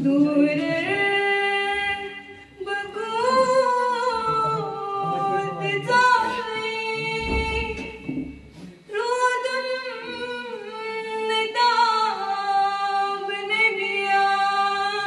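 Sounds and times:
young women singing unaccompanied: 0:00.0 - 0:08.2, 0:08.9 - 0:15.0.

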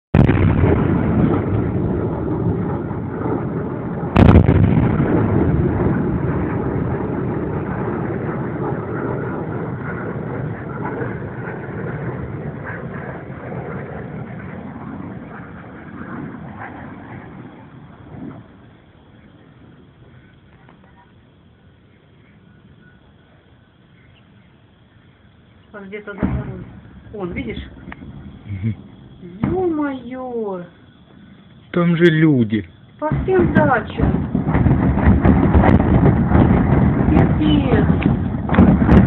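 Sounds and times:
distant rocket launcher shelling: 0:00.1 - 0:20.5, 0:25.8 - 0:30.4, 0:33.0 - 0:39.0.

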